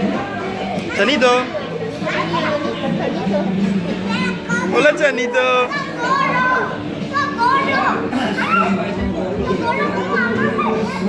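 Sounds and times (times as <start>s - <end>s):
children's voices: 0.0s - 11.0s
voices chattering and calling out: 0.0s - 11.0s.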